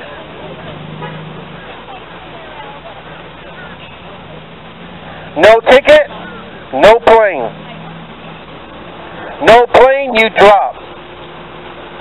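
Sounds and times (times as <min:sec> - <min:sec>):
faint distant voices: 0:00.0 - 0:12.0
traffic noise: 0:00.0 - 0:12.0.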